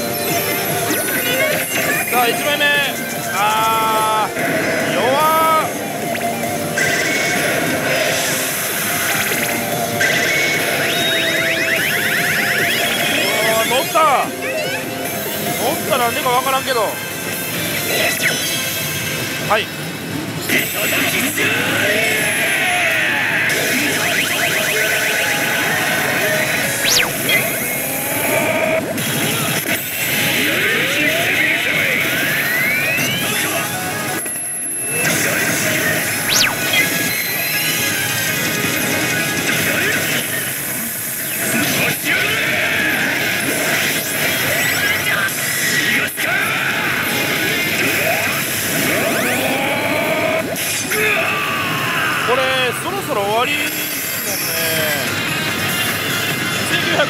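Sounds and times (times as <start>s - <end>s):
sliding electronic tones: 0.0s - 16.8s, 23.5s - 28.9s, 34.8s - 39.1s
slot machine game music: 0.0s - 21.4s, 23.5s - 45.7s.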